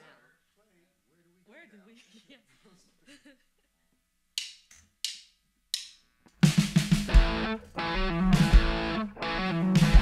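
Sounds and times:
drumstick count-in clicks: 0:04.4 - 0:06.1
drum kit: 0:04.4 - 0:10.0
bass guitar: 0:06.7 - 0:10.0
electric guitar: 0:07.0 - 0:10.0.

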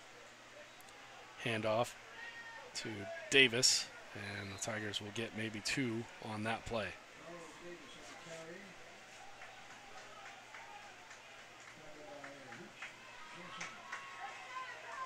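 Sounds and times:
faint voices calling out: 0:00.0 - 0:15.0.

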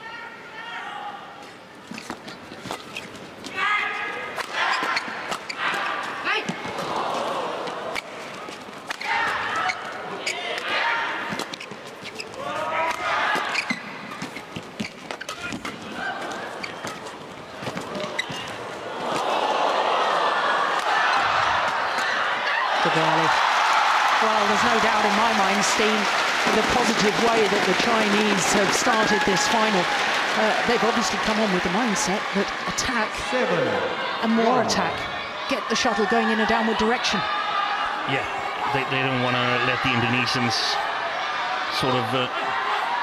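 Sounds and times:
crowd applause and cheering: 0:18.9 - 0:35.3.

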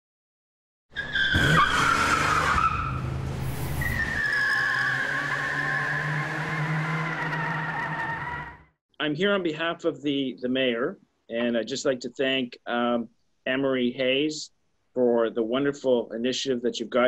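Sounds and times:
car tyres squealing: 0:00.9 - 0:08.8.

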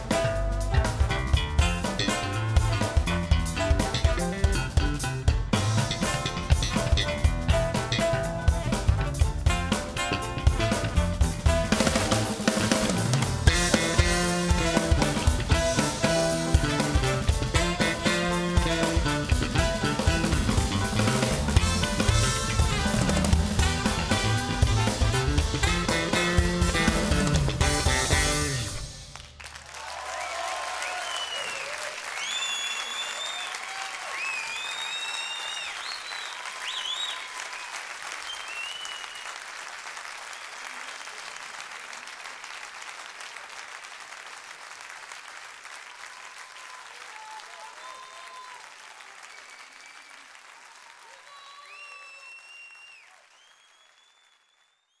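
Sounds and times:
band playing a song: 0:00.0 - 0:29.2
audience applauding and cheering: 0:05.6 - 0:55.0
audience whistling: 0:30.1 - 0:39.6, 0:40.2 - 0:41.2, 0:45.9 - 0:50.4, 0:51.1 - 0:55.0.

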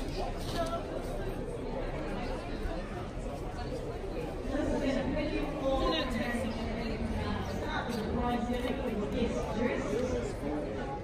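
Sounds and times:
people talking and chattering: 0:00.0 - 0:11.0.

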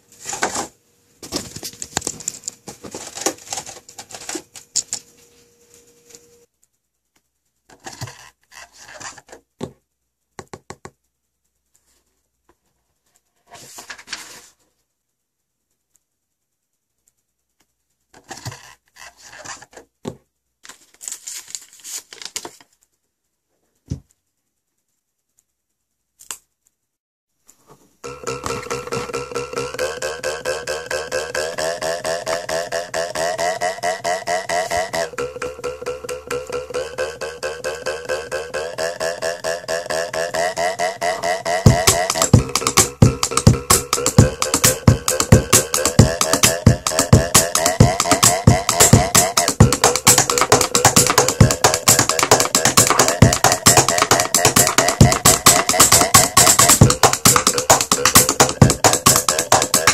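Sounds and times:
backing music track: 0:28.0 - 0:59.9.

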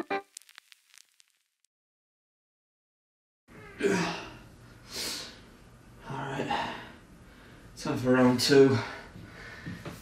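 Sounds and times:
man groaning: 0:03.8 - 0:04.3
man gasping breath: 0:08.8 - 0:10.0.

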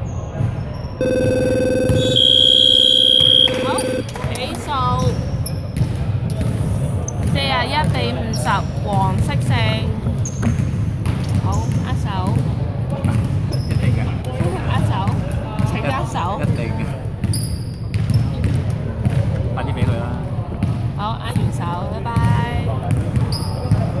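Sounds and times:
voices talking and calling out: 0:01.0 - 0:05.4.

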